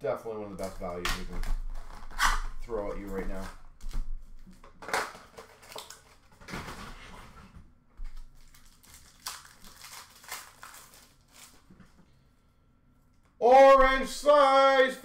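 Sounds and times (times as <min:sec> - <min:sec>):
wrappers crinkling and rustling: 0:04.4 - 0:06.3, 0:08.1 - 0:12.0.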